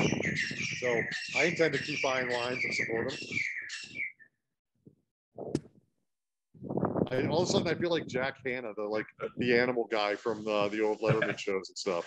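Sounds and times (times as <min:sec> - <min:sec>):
birds chirping: 0:00.0 - 0:04.4, 0:08.9 - 0:12.0.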